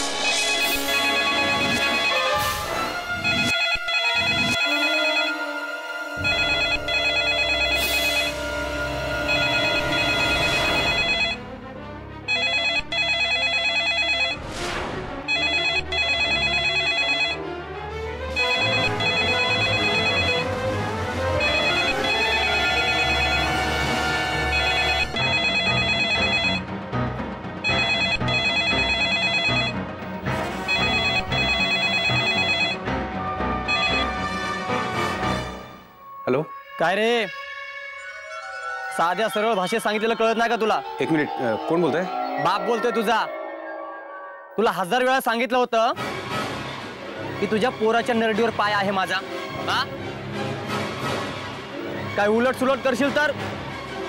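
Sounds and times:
dramatic background music: 0.0s - 13.0s, 14.4s - 44.7s, 46.0s - 54.0s
telephone ringer trilling: 6.2s - 8.3s, 9.3s - 11.4s, 12.3s - 14.4s, 15.3s - 17.4s, 18.4s - 20.4s, 21.4s - 23.5s, 24.5s - 26.6s, 27.7s - 29.7s, 30.7s - 32.8s.

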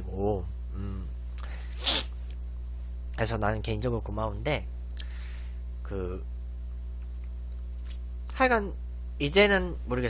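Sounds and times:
low electrical hum: 0.0s - 10.0s
man breathing: 0.8s - 2.1s, 5.0s - 5.6s.

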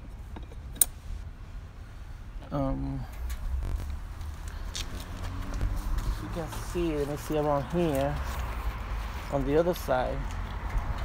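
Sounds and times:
low steady rumble: 0.0s - 9.4s.

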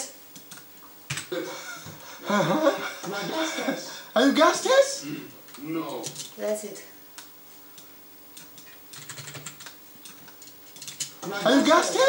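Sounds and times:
computer keyboard clicks: 0.4s - 1.3s, 6.0s - 6.3s, 7.2s - 11.1s.

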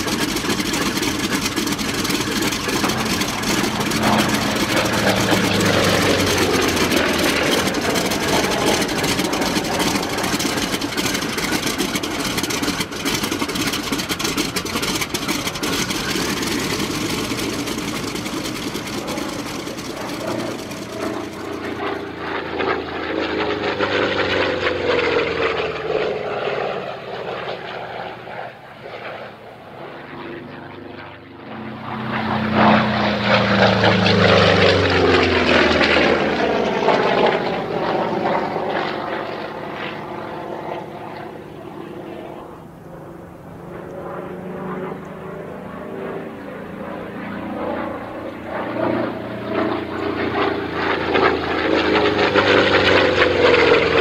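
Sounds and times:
propeller aircraft engine: 0.0s - 54.0s.

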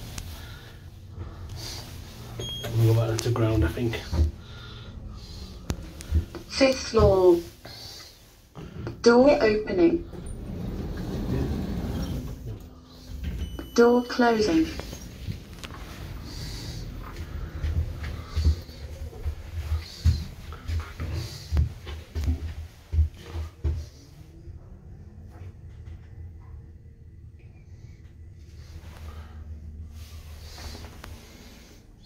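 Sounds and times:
door announcement: 8.8s - 17.0s
lift doors sliding open: 10.0s - 17.2s.

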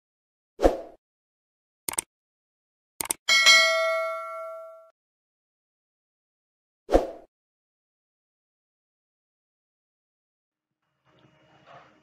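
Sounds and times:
mouse clicks: 1.9s - 2.1s
notification bell ding: 3.3s - 4.9s.

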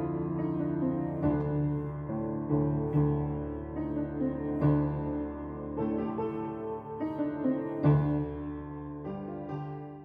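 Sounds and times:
piano chords ringing: 0.0s - 10.0s.

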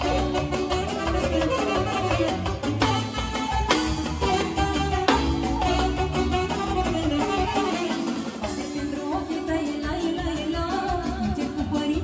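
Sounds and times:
saxophone melody: 0.0s - 9.8s
electronic keyboards: 0.0s - 12.0s
live dance band music: 0.0s - 12.0s.

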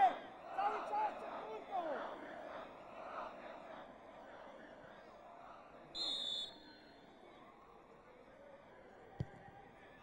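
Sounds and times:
faint stadium crowd murmur: 0.0s - 10.0s.

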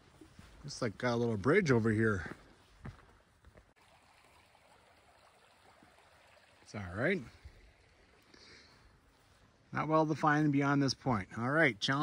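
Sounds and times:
creek rushing: 3.7s - 9.4s.

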